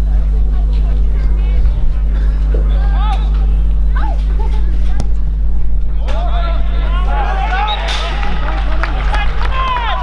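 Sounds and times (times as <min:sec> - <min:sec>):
steady low rumble: 0:00.0 - 0:10.0
voices shouting over one another: 0:06.0 - 0:10.0.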